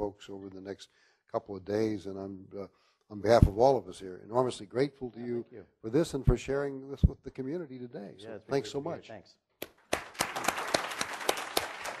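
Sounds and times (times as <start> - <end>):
audience applauding: 9.8 - 12.0.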